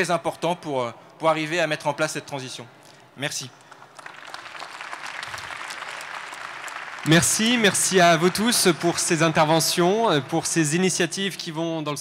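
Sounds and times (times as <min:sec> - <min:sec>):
audience applause: 0:03.7 - 0:09.1.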